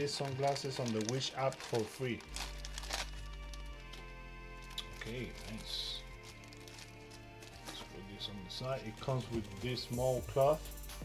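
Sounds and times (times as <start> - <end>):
plastic bag crinkling: 0.0 - 10.2
background music: 0.0 - 11.0.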